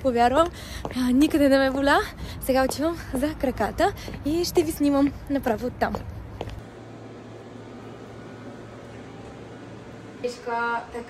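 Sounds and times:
fan hum: 0:03.2 - 0:11.0.

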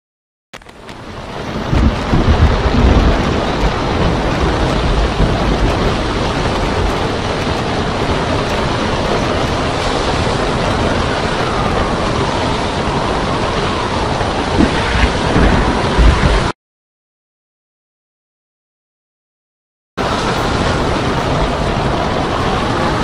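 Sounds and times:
crashing water: 0:00.6 - 0:16.6, 0:20.0 - 0:23.0
wind: 0:00.6 - 0:16.6, 0:20.0 - 0:23.0
heavy low rumble: 0:00.7 - 0:16.6, 0:20.0 - 0:23.0.

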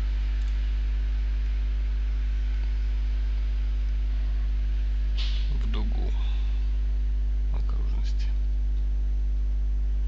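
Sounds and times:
low electrical hum: 0:00.0 - 0:10.0
person whispering: 0:05.5 - 0:06.7.

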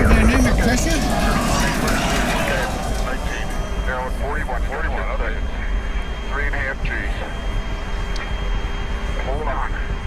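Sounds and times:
rocket launch rumble: 0:00.0 - 0:05.3.

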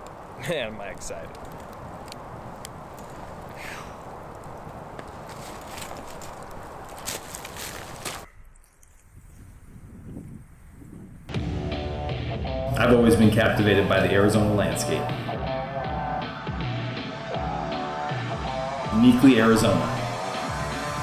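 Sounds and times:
campfire crackling and popping: 0:00.0 - 0:11.3, 0:17.4 - 0:21.0
music: 0:11.3 - 0:21.0.

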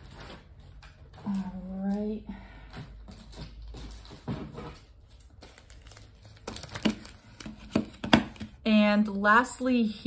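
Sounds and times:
packaging crinkling and rustling: 0:03.0 - 0:08.6.

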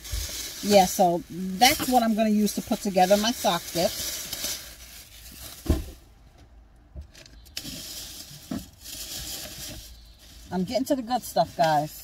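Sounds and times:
rustling and rummaging: 0:00.0 - 0:06.1, 0:07.1 - 0:12.0.

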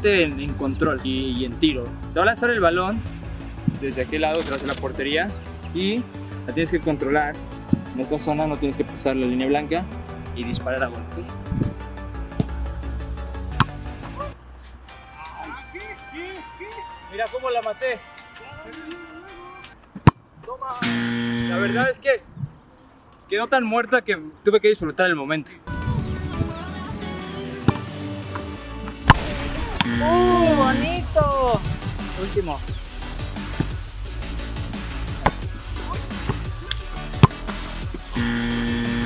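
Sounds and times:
background music: 0:00.0 - 0:21.9, 0:25.7 - 0:39.0
football being struck: 0:13.6 - 0:13.8, 0:29.0 - 0:30.0, 0:35.1 - 0:36.5, 0:37.2 - 0:37.6.

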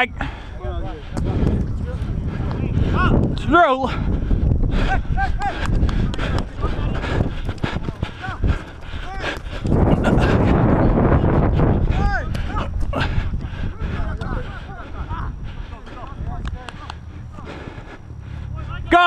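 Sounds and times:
distant players shouting: 0:00.0 - 0:10.9, 0:11.8 - 0:19.0
wind rumble on microphone: 0:00.0 - 0:19.0.

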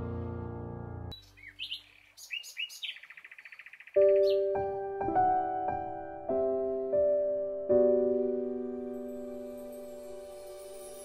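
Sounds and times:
held music chord: 0:00.0 - 0:01.1.

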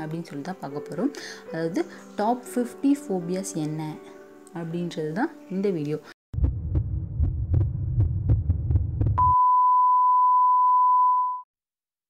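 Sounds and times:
heartbeat thuds: 0:06.4 - 0:09.3
heart monitor flatline tone: 0:08.3 - 0:11.4.

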